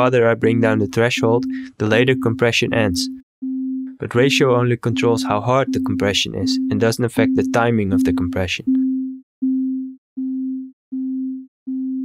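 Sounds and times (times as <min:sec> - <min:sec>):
low sine-wave note: 0:03.4 - 0:12.0.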